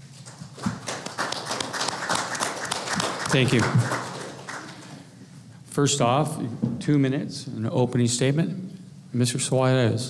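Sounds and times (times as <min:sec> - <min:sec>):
audience applauding: 0:00.2 - 0:05.1.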